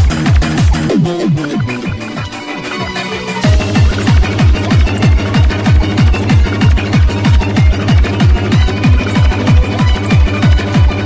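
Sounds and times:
electronic dance music: 0.0 - 11.0
heavy kick drum: 0.0 - 11.0.

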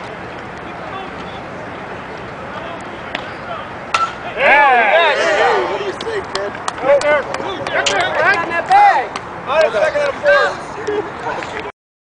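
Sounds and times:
softball bat hitting ball: 3.1 - 4.3.

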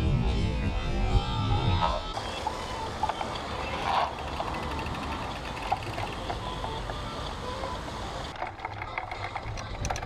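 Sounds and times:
bike rattling over paving stones: 2.2 - 10.0
small clicks: 3.0 - 10.0.

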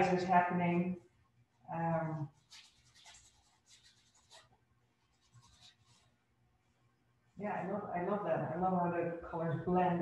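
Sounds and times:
paintbrush brushing on canvas: 1.0 - 6.9.

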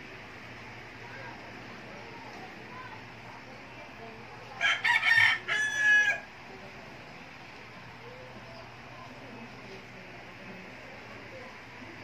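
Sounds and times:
rooster crowing: 4.6 - 6.3.

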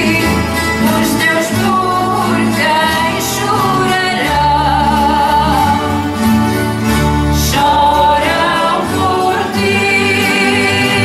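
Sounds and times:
people singing: 0.0 - 6.5, 7.3 - 11.0
strummed guitars ensemble: 0.0 - 11.0.

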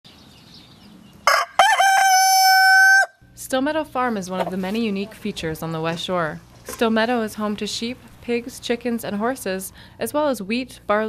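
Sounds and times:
rooster crowing: 1.2 - 3.2.

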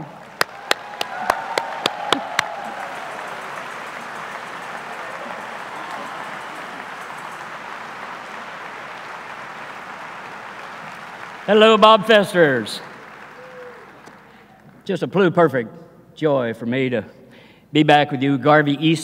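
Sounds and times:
sharp close claps: 0.0 - 14.4
audience applauding: 0.0 - 14.6.

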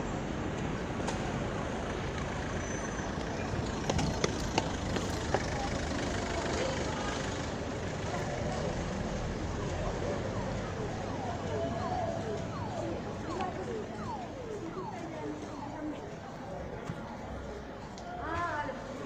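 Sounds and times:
road traffic rumble: 0.0 - 19.0
indistinct voices: 4.0 - 19.0.

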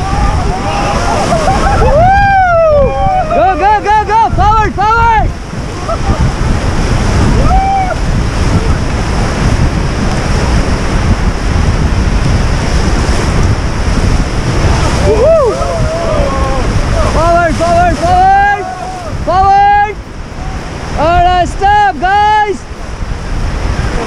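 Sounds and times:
whitewater rapids rushing: 0.0 - 24.0
wind buffeting microphone: 0.0 - 24.0
person shouting: 15.0 - 20.0.

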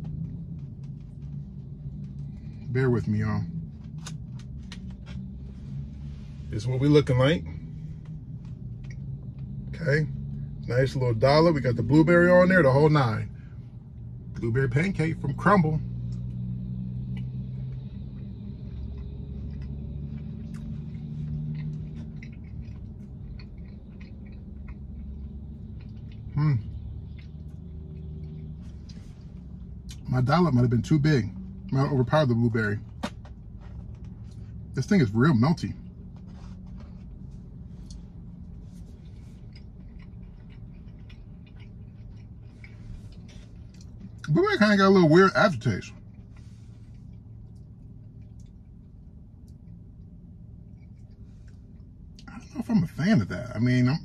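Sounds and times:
low steady hum: 0.0 - 54.0
person chewing cookie: 7.1 - 11.5, 15.9 - 31.9, 35.8 - 44.3, 46.0 - 52.6.

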